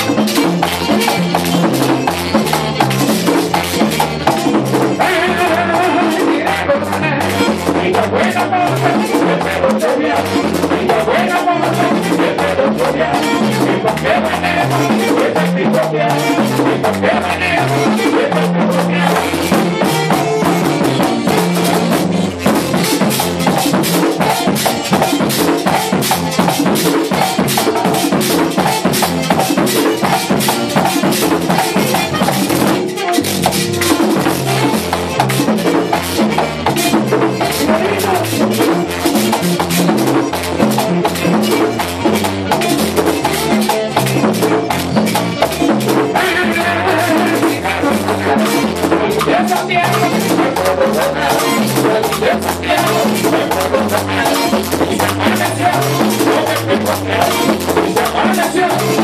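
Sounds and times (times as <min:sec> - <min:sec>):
drum kit: 0:00.0 - 0:59.0
electric guitar: 0:00.0 - 0:59.0
person singing: 0:00.0 - 0:59.0
rattling hand percussion: 0:00.0 - 0:59.0.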